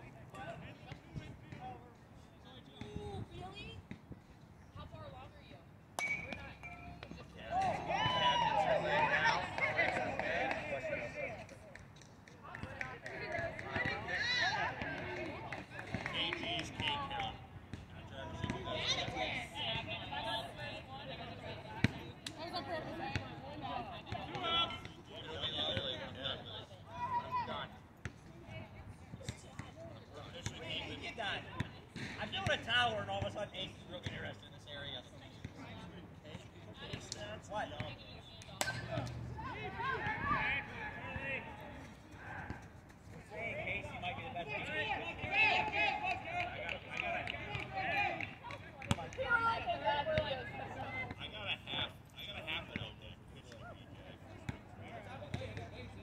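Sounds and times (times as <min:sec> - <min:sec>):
people talking and calling out: 0:00.0 - 0:56.0
bat hitting ball: 0:06.0 - 0:06.9
people shouting: 0:07.5 - 0:09.5.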